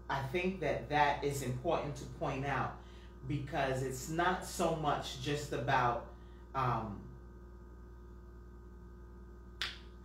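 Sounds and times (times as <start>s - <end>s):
person speaking: 0.0s - 7.1s
low room hum: 0.0s - 10.0s
short breath: 2.8s - 3.2s.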